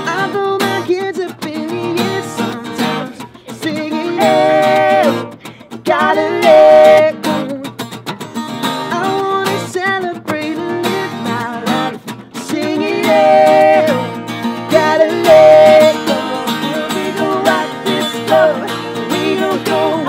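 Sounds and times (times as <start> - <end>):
person singing: 0.0 - 7.8, 9.0 - 20.0
strummed acoustic guitar: 0.0 - 20.0.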